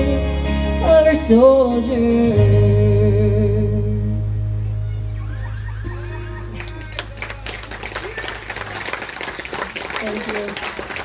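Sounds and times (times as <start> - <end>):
audience clapping: 6.5 - 11.0.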